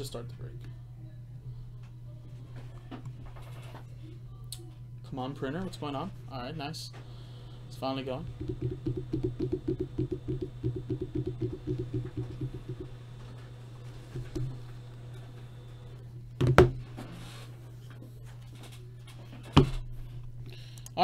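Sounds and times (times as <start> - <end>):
steady low hum: 0.0 - 21.0
printer mechanical chatter: 7.6 - 16.0.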